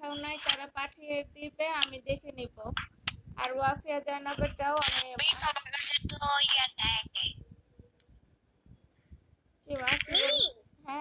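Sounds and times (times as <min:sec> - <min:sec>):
person talking over video call: 0:00.0 - 0:07.4, 0:09.6 - 0:11.0.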